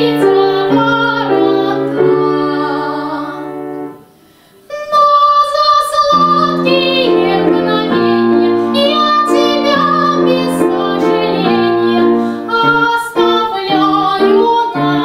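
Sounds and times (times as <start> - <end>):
young woman singing soprano: 0.0 - 3.9, 4.6 - 15.0
grand piano accompaniment: 0.0 - 4.2, 5.7 - 15.0.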